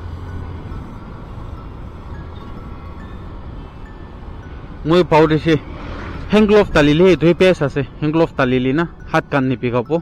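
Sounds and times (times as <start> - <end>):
scooter engine and road rumble: 0.0 - 10.0.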